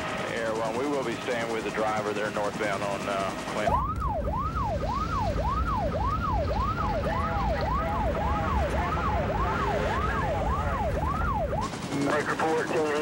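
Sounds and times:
police siren yelping: 0.0s - 13.0s
road rumble: 3.1s - 12.2s.

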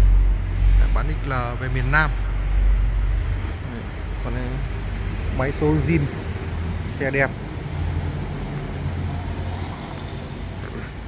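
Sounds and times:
steady low rumble: 0.0s - 7.1s.

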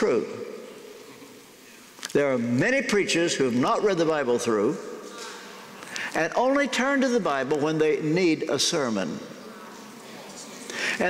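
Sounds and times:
man preaching over amplification: 0.0s - 0.6s, 2.1s - 5.0s, 6.1s - 9.3s
hissy intake of breath: 10.7s - 11.0s.

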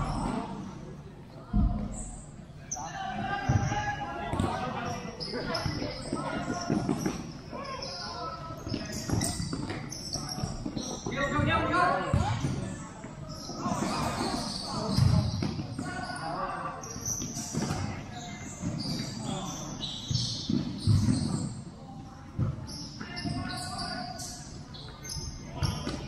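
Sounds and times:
ball kicked and bouncing on court: 3.4s - 7.4s, 8.6s - 16.0s, 17.1s - 18.0s, 20.0s - 21.6s, 22.3s - 23.6s, 25.0s - 26.0s.

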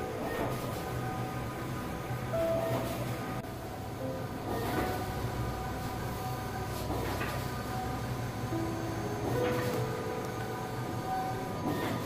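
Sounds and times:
hum of motors and fans: 0.0s - 12.0s.

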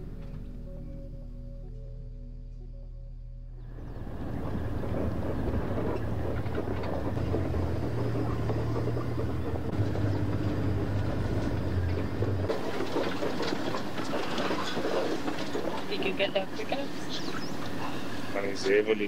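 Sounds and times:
vehicle engine drone: 0.0s - 19.0s
vehicle body rattling: 3.7s - 18.7s.

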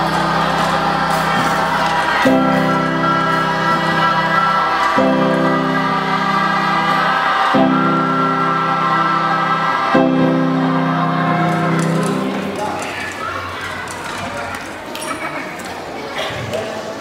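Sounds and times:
students singing in chorus: 0.0s - 12.8s
murmured chatter: 0.0s - 17.0s.

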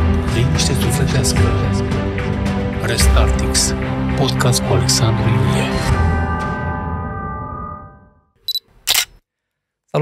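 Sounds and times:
high click: 8.5s - 9.2s.

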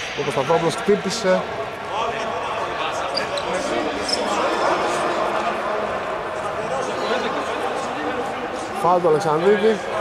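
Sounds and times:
players' voices echoing: 0.0s - 10.0s
short high squeaks: 3.1s - 4.4s.

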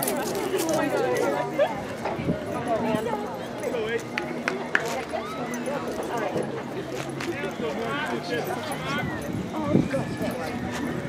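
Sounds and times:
crowd chatter and calling: 0.0s - 11.0s.

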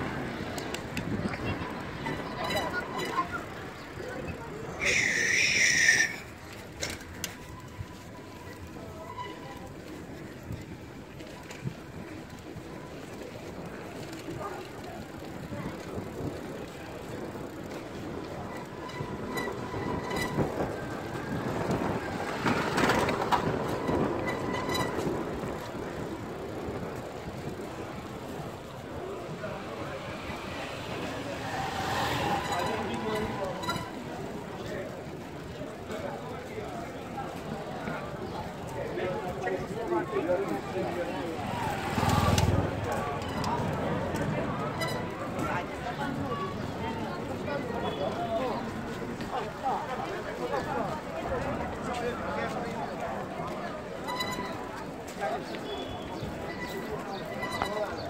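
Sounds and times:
people chattering: 0.0s - 58.0s
street rumble: 0.0s - 58.0s
motorcycle engine passing: 30.0s - 34.0s, 41.4s - 44.6s.

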